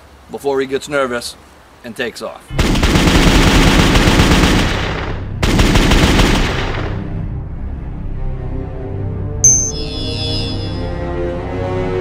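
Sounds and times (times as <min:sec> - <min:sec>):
automatic gunfire: 0:02.6 - 0:06.9
low steady music tones: 0:07.0 - 0:11.3.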